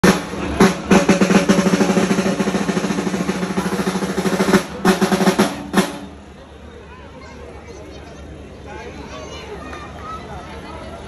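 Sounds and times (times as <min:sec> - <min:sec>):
fast drum roll: 0:00.0 - 0:06.3.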